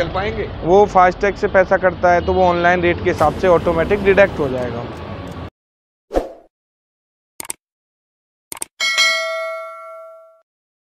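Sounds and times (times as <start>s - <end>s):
bell chime ding: 8.8s - 10.5s.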